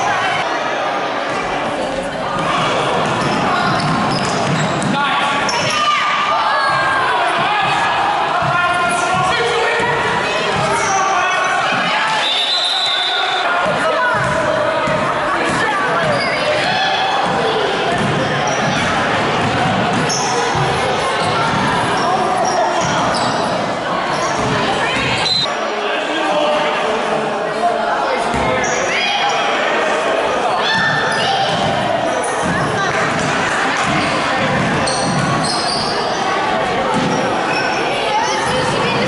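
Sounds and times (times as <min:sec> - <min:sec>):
basketball bouncing on gym floor: 0:02.4 - 0:05.0.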